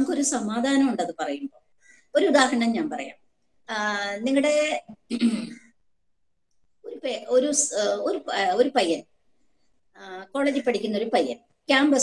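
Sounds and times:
woman speaking: 0.0s - 1.6s, 2.2s - 5.2s, 6.8s - 9.1s, 10.0s - 12.0s
woman clearing throat: 5.1s - 5.7s.

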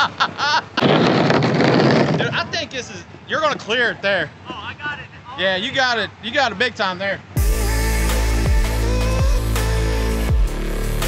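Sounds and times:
rc car motor and tyres rushing: 0.7s - 2.6s.

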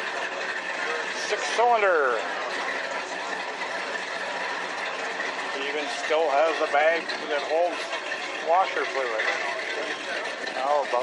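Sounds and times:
chatter of voices: 0.0s - 11.0s
outdoor noise: 0.0s - 11.0s.

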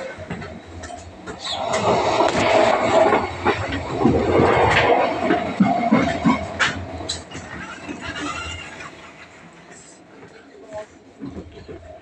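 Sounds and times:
train wheels rumbling on track: 0.0s - 12.0s.

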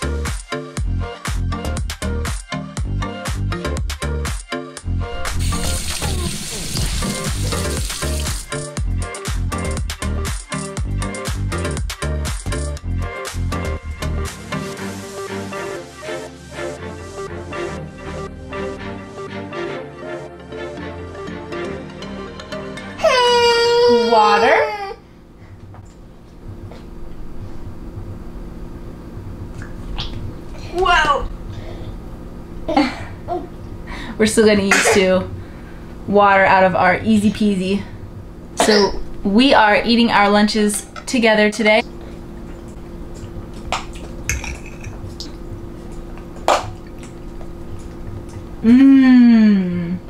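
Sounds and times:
baby crying: 23.0s - 25.0s
faint steady hum: 25.0s - 50.0s.

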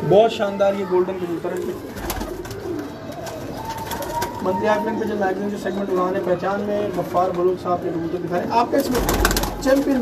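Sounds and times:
low pigeon call: 1.6s - 7.1s
pigeon wings flapping: 2.0s - 4.4s, 8.8s - 10.0s.

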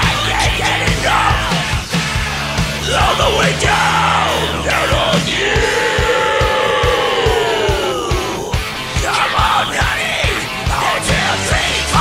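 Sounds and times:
rock band playing: 0.0s - 12.0s
singer holding long note: 2.8s - 9.8s.

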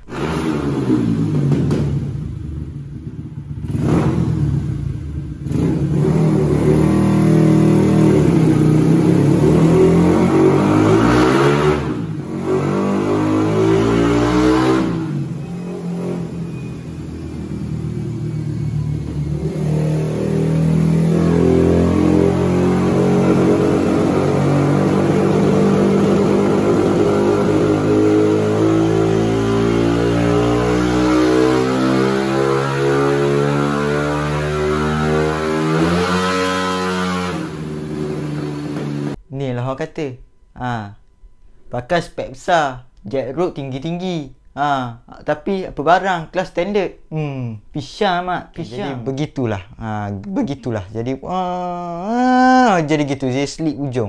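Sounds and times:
motorcycle engine revving: 0.0s - 39.2s.

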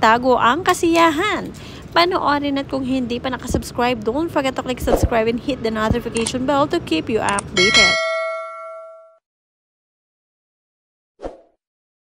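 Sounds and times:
bright notification bell ding: 7.6s - 9.2s.

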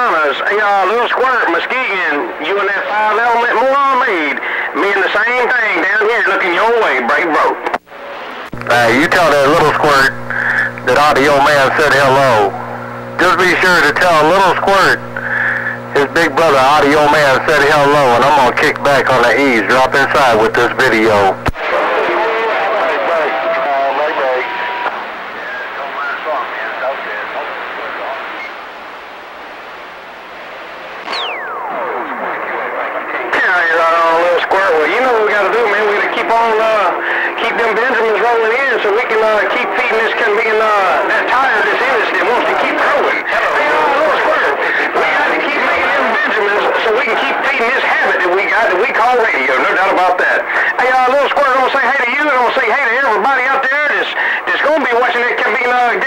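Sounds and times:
faint garbled radio voices: 0.0s - 56.0s
radio static: 0.0s - 56.0s
clear radio voice: 8.5s - 28.4s, 33.2s - 56.0s
descending radio whistle: 22.5s - 26.7s, 31.0s - 32.9s.

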